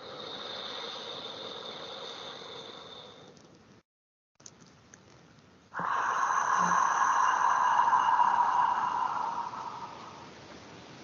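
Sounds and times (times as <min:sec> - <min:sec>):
person exhaling slowly: 0:00.0 - 0:03.3, 0:05.8 - 0:10.6.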